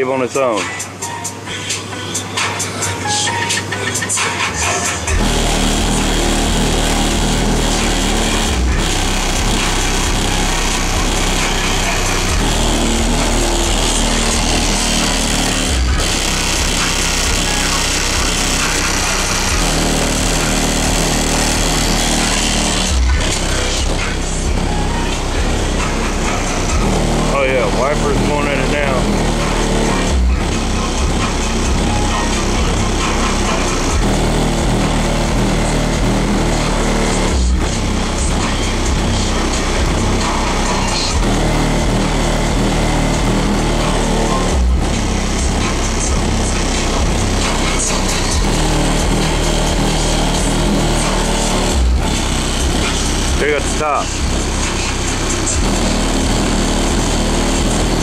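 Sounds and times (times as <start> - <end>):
bass-heavy music with vocals: 0.0 - 58.0.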